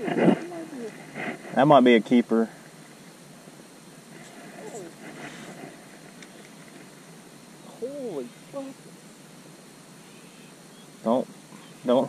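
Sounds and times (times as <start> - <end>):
background hiss: 0.0 - 12.0
faint distant voice: 4.2 - 5.4.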